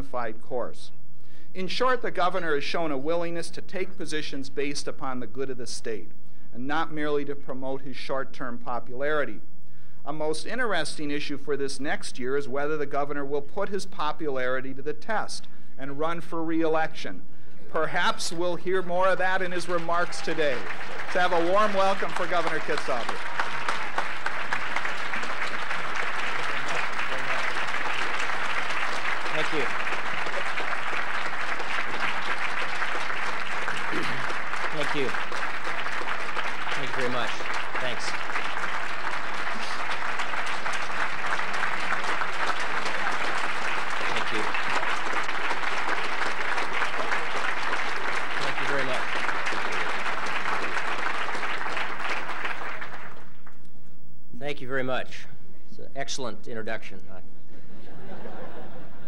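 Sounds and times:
large audience applauding: 0:17.8 - 0:53.6.

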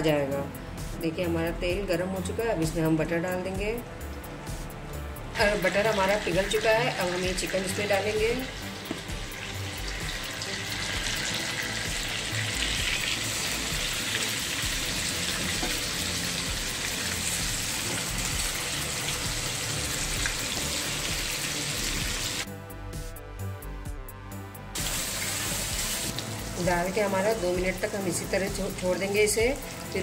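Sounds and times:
chicken sizzling in hot oil: 0:05.4 - 0:22.5, 0:24.8 - 0:30.0.

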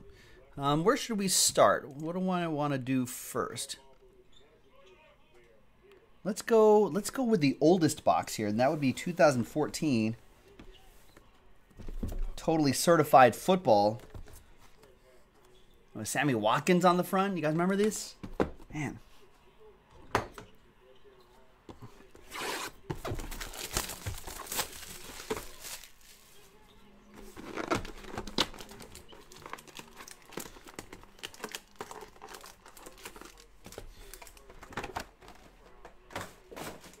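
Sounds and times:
foil card packs crinkling: 0:23.1 - 0:26.4, 0:27.3 - 0:35.6
plastic shrink wrap tearing: 0:23.3 - 0:26.2, 0:27.6 - 0:33.5.

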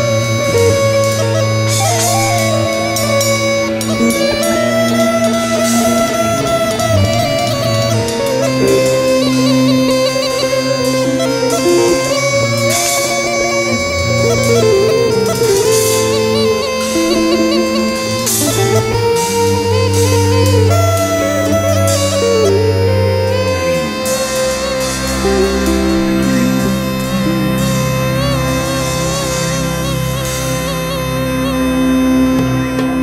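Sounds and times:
bagpipe melody: 0:00.0 - 0:33.0
bass line: 0:00.0 - 0:33.0
guitar: 0:00.0 - 0:33.0.

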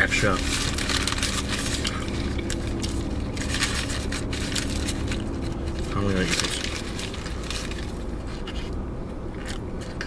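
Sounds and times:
wrapper crinkling: 0:00.0 - 0:08.7
low rumble inside a car: 0:00.0 - 0:10.0.

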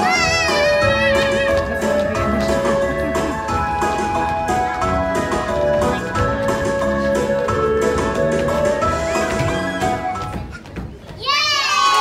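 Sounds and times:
child squealing: 0:00.0 - 0:01.5
backing song: 0:00.0 - 0:10.4.

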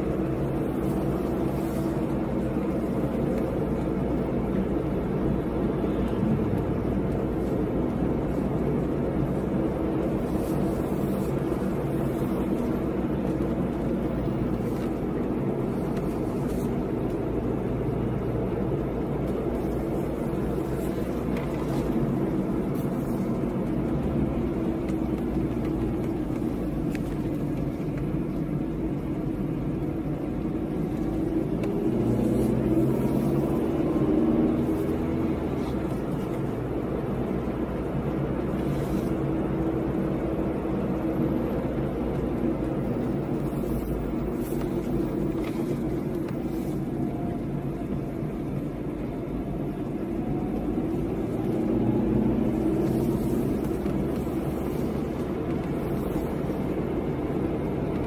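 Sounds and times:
car engine from inside cabin: 0:00.0 - 0:58.0
road noise: 0:00.0 - 0:58.0.

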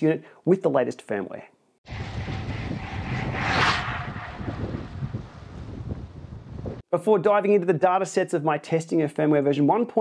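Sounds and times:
wind buffeting microphone: 0:01.9 - 0:06.8.

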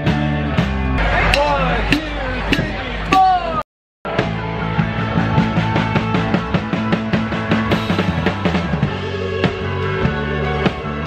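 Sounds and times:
live rock band playing: 0:00.0 - 0:03.4, 0:04.1 - 0:11.0.

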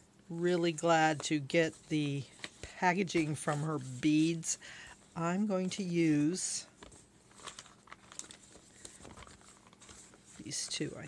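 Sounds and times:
plastic bags rustling: 0:06.3 - 0:11.0.

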